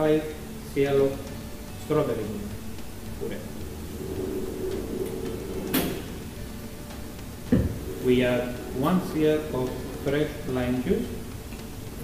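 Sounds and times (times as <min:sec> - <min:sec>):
steady low hum: 0:00.3 - 0:12.0.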